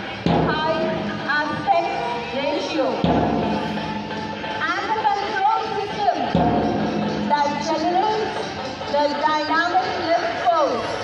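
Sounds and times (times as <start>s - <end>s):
music over loudspeakers: 0.0s - 11.0s.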